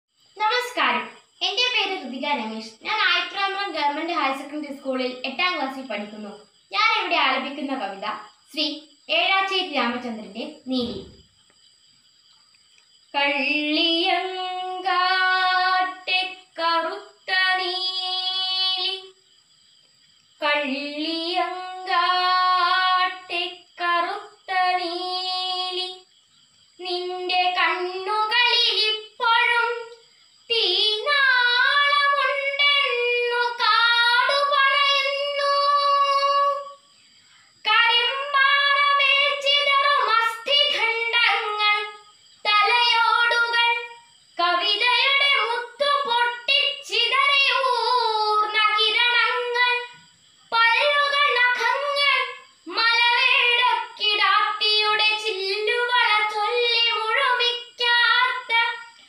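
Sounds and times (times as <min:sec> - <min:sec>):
girl reciting a poem in song: 0:00.2 - 0:11.2, 0:12.6 - 0:59.0.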